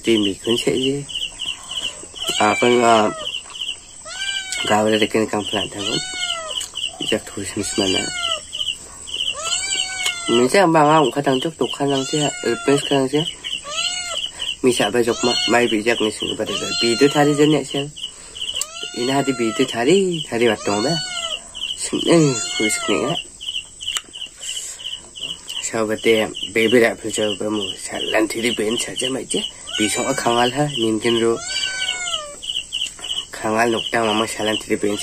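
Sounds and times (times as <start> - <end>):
quick high chirping: 0.2 - 25.6
cat meowing: 2.2 - 3.4, 4.0 - 8.6, 9.2 - 17.9, 18.5 - 23.3, 29.6 - 32.5, 33.9 - 35.0.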